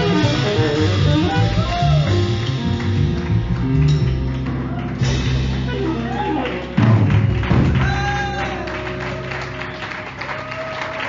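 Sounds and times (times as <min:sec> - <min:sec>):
jazz quartet playing: 0:00.0 - 0:10.6.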